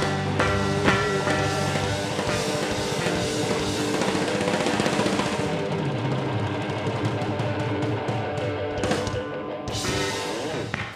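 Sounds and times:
rock band playing live: 0:00.0 - 0:10.9.

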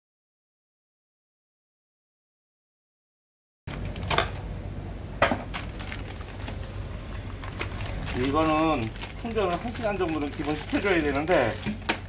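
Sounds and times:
steady low hum: 0:03.7 - 0:12.0
sharp clicks and handling noises: 0:05.2 - 0:12.0
scissors cutting plastic bag: 0:07.3 - 0:12.0.

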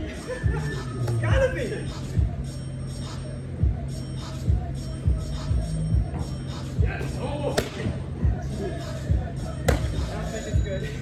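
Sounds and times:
background music: 0:00.0 - 0:11.0
sharp slap: 0:07.6 - 0:07.8.

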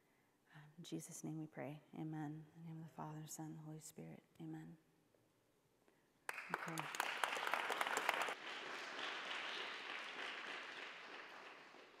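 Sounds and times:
audience applauding: 0:06.3 - 0:12.0.

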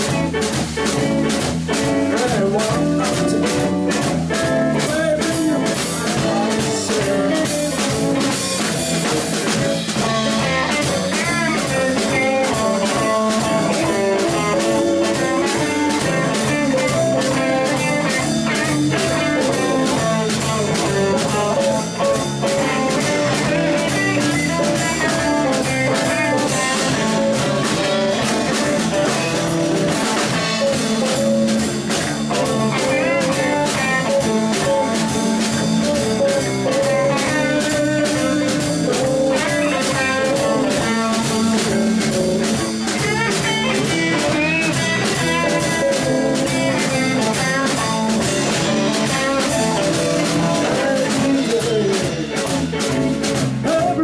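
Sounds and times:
drum kit steady beat: 0:00.0 - 0:54.0
electric guitars: 0:00.0 - 0:54.0.

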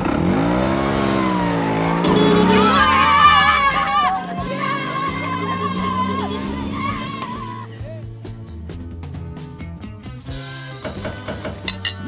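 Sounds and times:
scooter engine revving: 0:00.0 - 0:07.7.

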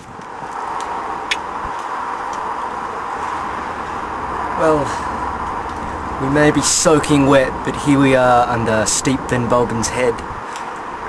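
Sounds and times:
traffic hiss on wet road: 0:00.0 - 0:11.0.

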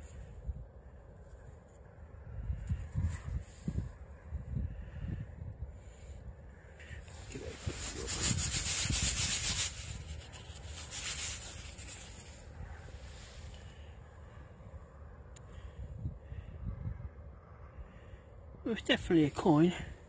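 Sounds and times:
coin rubbing against fabric: 0:07.2 - 0:12.4.

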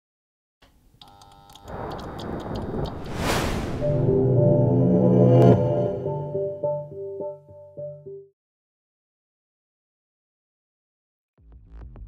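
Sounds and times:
low rumble: 0:01.7 - 0:06.9
rising whoosh: 0:01.7 - 0:07.0
held synth chord: 0:03.8 - 0:08.3.

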